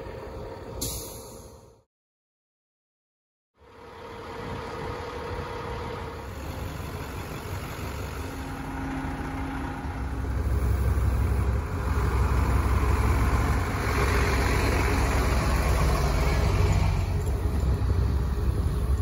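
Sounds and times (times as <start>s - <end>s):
fire truck engine running: 3.6s - 19.0s.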